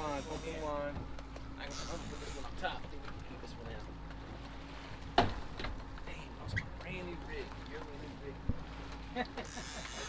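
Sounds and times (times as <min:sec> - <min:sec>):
outboard motors humming: 0:00.0 - 0:10.0
water noise: 0:00.0 - 0:10.0.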